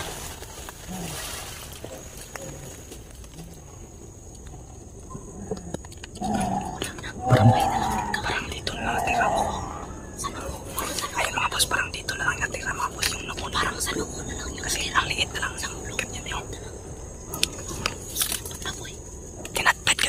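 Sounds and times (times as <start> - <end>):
leaves rustling: 0.0 - 20.0
person whispering: 6.3 - 16.8, 18.1 - 20.0.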